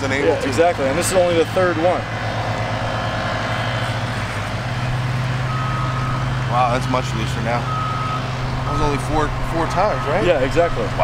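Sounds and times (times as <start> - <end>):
low engine hum: 0.0 - 11.0
high beep: 9.9 - 10.2.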